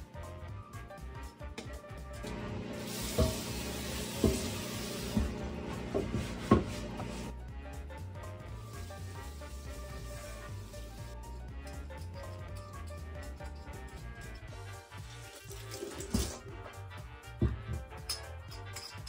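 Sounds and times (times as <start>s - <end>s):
background music: 0.0s - 19.0s
steady hiss: 2.7s - 5.3s, 8.7s - 11.2s
kitchen items knocking: 3.1s - 7.2s, 15.4s - 16.4s.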